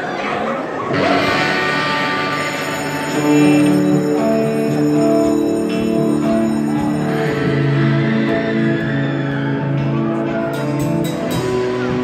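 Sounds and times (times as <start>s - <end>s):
electric guitars ringing: 0.9s - 11.8s.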